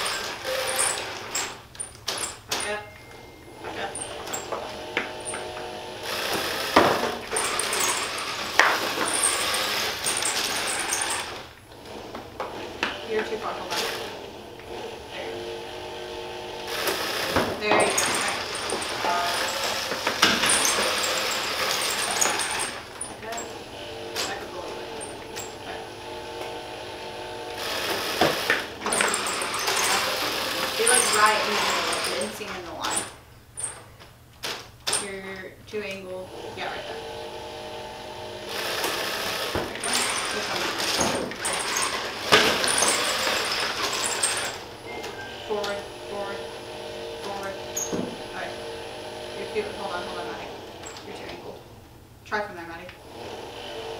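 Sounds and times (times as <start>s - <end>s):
electric motors whining: 0.0s - 52.2s, 53.0s - 53.9s.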